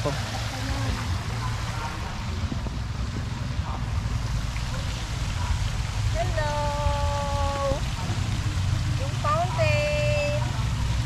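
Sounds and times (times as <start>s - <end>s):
fountain water splashing: 0.0s - 11.0s.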